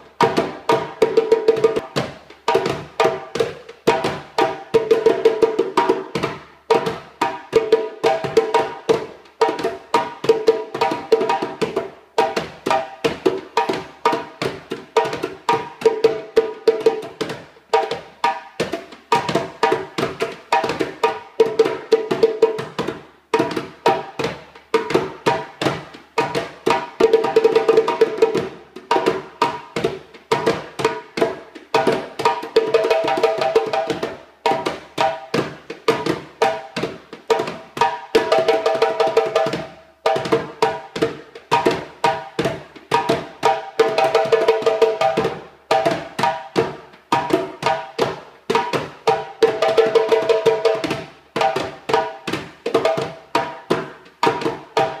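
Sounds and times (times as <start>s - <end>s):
djembe hand drumming: 0.0s - 55.0s.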